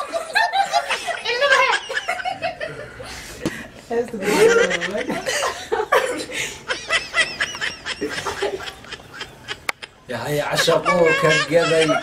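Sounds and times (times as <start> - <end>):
people laughing: 0.0 - 12.0.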